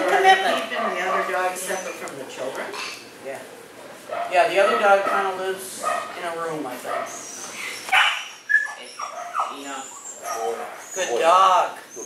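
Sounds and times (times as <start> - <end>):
dog whimpering: 1.4 - 2.0, 7.1 - 12.0.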